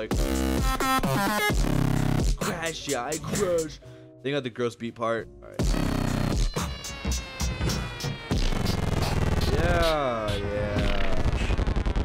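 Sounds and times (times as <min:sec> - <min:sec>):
trap beat: 0:00.0 - 0:03.8, 0:05.6 - 0:11.6
bass: 0:00.0 - 0:12.0
hi-hats: 0:01.5 - 0:03.8, 0:05.6 - 0:10.8
hard kick drum: 0:05.6 - 0:11.4.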